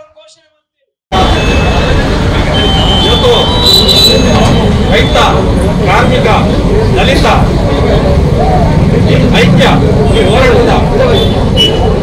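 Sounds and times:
man speaking over loudspeaker: 0:00.0 - 0:00.8, 0:02.9 - 0:08.1, 0:09.0 - 0:11.4
low rumble of street traffic: 0:01.1 - 0:12.0.

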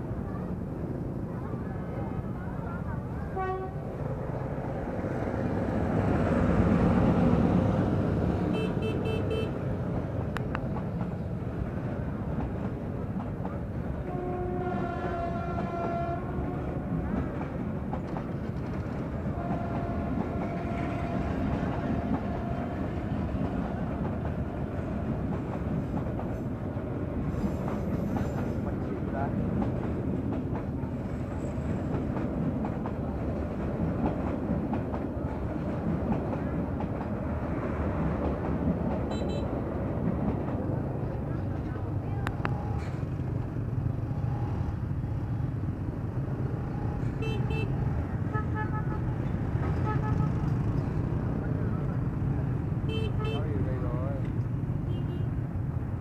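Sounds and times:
train wheels rumbling on rails: 0:03.0 - 0:56.0
train horn blasts: 0:03.4 - 0:03.8, 0:14.0 - 0:16.8, 0:19.4 - 0:21.4.

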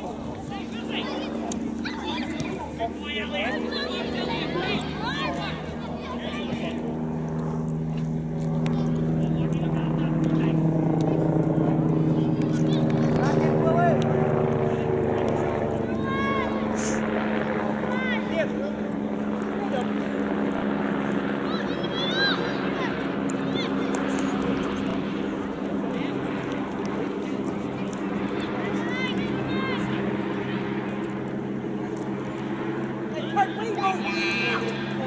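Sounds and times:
engine drone: 0:00.0 - 0:35.0.

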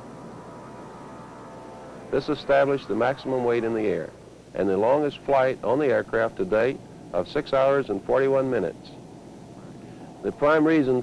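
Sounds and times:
jet engines climbing: 0:00.0 - 0:05.3
faint steady whine: 0:00.0 - 0:11.0.

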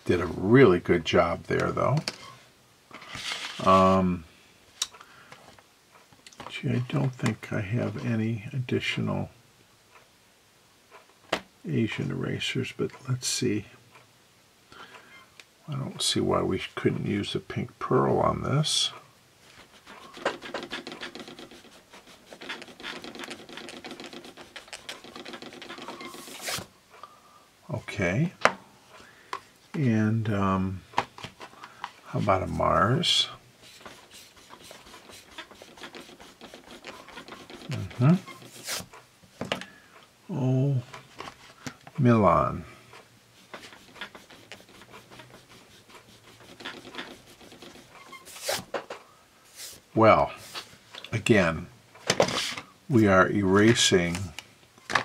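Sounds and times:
eraser rubbing on paper: 0:19.5 - 0:26.7, 0:32.2 - 0:38.9, 0:43.4 - 0:48.7.

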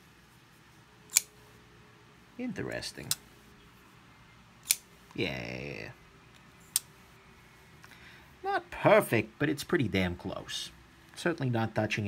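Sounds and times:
pocketknife blade clicking: 0:01.1 - 0:01.3, 0:04.6 - 0:04.8.

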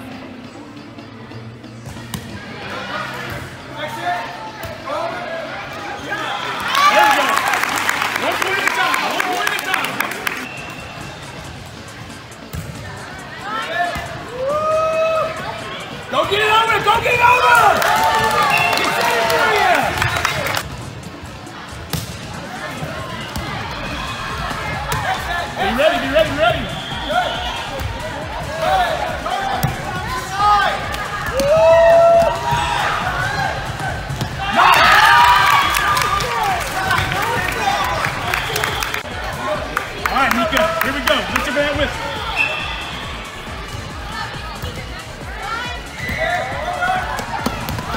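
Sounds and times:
voices of players and spectators: 0:00.0 - 0:47.9
crowd shouting: 0:22.7 - 0:47.9.

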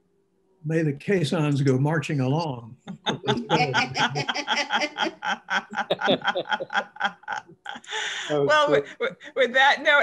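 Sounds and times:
people laughing: 0:02.8 - 0:08.3.

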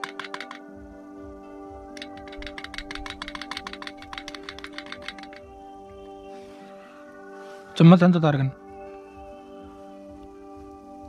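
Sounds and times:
fast ticking beat: 0:00.0 - 0:00.7, 0:01.9 - 0:05.5.

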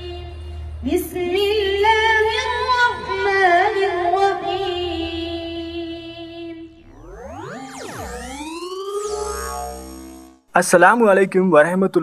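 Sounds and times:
electronic tone sweeping in pitch: 0:06.7 - 0:10.6.

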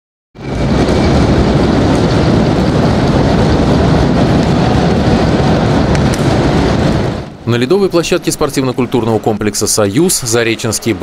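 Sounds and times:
ice hockey arena rumble: 0:00.4 - 0:11.0.

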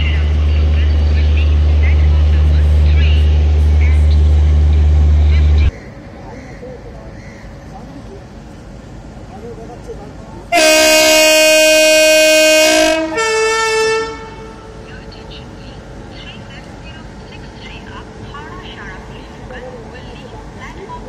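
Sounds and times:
station background noise: 0:00.0 - 0:21.0
faint voices: 0:05.2 - 0:10.6
locomotive air horn blasts: 0:10.5 - 0:14.8.

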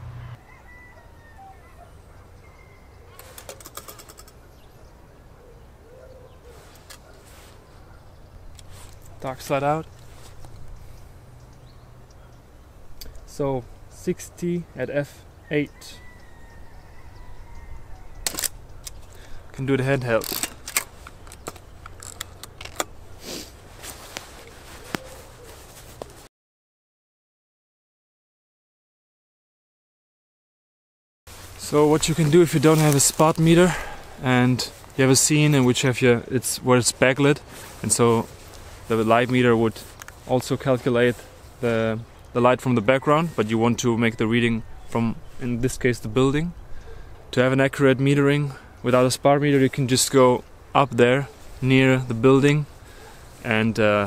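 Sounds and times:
distant bird calls: 0:00.0 - 0:26.1, 0:31.3 - 0:47.4, 0:52.6 - 0:53.4
brief rustle: 0:03.1 - 0:04.4, 0:06.5 - 0:07.8, 0:20.1 - 0:26.3
camera clicks and rattles: 0:03.1 - 0:04.4, 0:18.2 - 0:19.2, 0:20.1 - 0:23.0
small clicks: 0:03.1 - 0:04.4.

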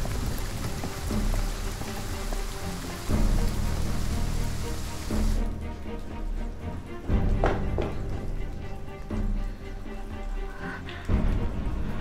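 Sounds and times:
rain hissing: 0:00.0 - 0:07.3, 0:08.0 - 0:12.0
music of sustained low chords: 0:00.0 - 0:12.0.

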